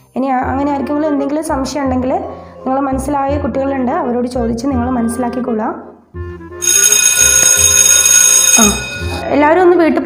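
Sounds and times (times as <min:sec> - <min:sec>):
electric bell ringing: 0:06.6 - 0:09.4.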